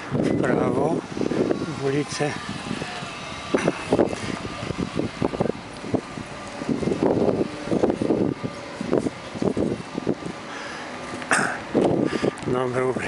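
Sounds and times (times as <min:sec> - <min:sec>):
car traffic: 0:00.0 - 0:13.0
wind buffeting microphone: 0:00.0 - 0:13.0.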